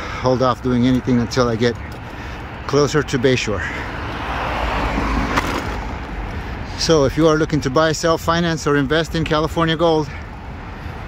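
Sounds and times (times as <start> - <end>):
low traffic rumble: 0.0 - 11.0
passing vehicles rushing: 0.0 - 11.0.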